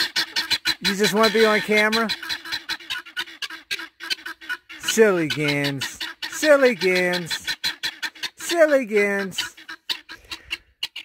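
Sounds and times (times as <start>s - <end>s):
guineafowl calling: 0.0s - 11.0s.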